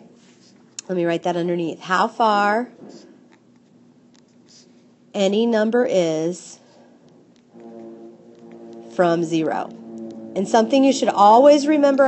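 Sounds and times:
steady droning tone: 0:07.4 - 0:12.0.

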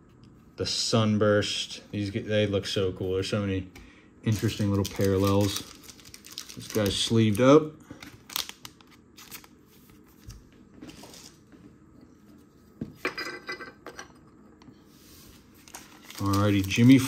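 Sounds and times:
packaging rustle: 0:04.3 - 0:10.3, 0:15.6 - 0:17.0
plastic sleeves crinkling: 0:04.3 - 0:11.4, 0:15.5 - 0:17.0.

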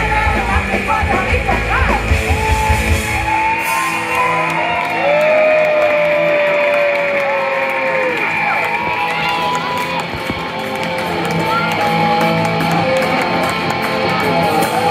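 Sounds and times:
drums: 0:00.0 - 0:07.2, 0:08.2 - 0:14.9
crowd cheering: 0:02.1 - 0:14.9.

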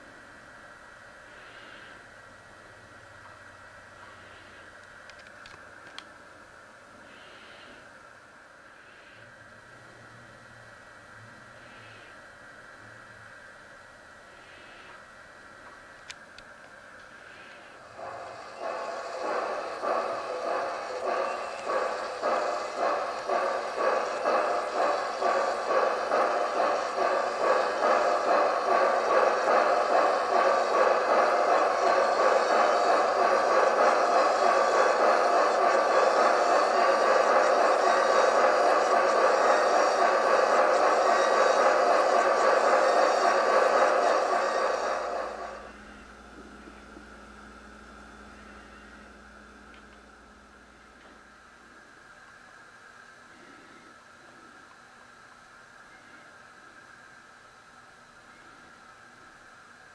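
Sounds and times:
synthesized steam engine chuffing: 0:17.2 - 0:49.3.

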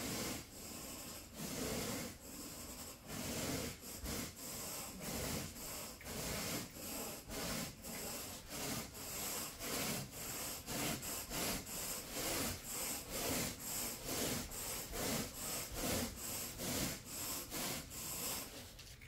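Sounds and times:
rake scraping through carpet: 0:00.0 - 0:19.0.

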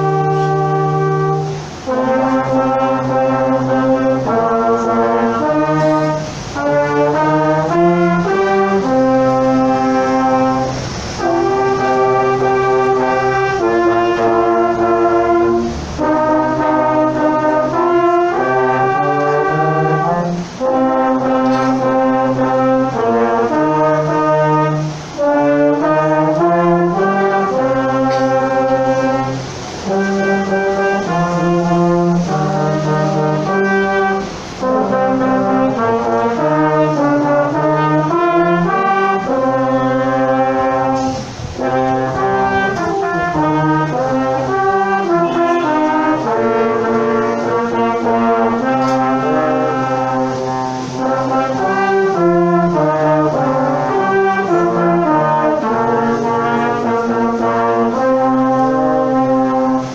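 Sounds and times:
brass quintet playing: 0:00.0 - 0:59.9.

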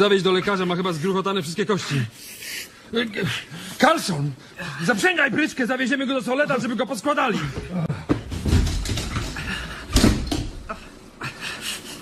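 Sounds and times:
shuffling and knocking: 0:07.5 - 0:09.7.

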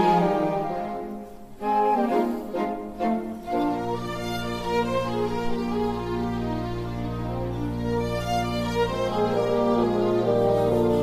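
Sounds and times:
orchestral strings playing softly: 0:00.0 - 0:11.0.

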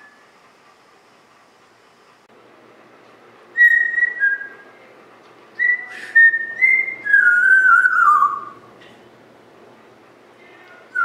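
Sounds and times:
parrot whistling: 0:03.5 - 0:04.7, 0:05.6 - 0:08.7.

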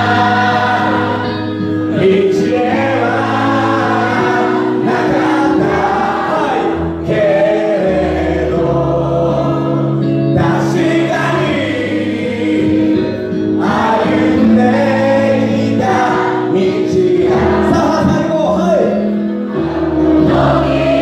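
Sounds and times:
crowd singing along: 0:00.0 - 0:21.0
man singing into microphone: 0:01.9 - 0:09.6, 0:14.0 - 0:19.0.

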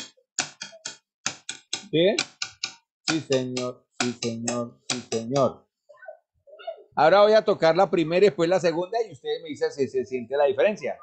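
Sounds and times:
hands tapping on a tabletop: 0:00.0 - 0:05.5.

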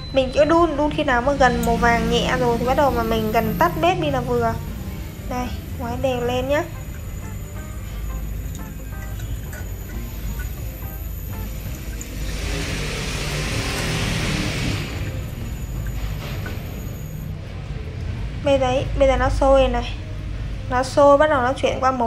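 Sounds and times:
background music: 0:00.0 - 0:22.0
boiling sugar water hissing: 0:01.4 - 0:17.3.

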